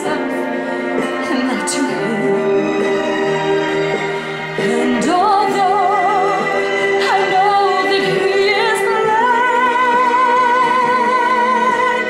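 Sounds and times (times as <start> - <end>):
woman singing with vibrato: 0.0 - 3.6, 4.4 - 12.0.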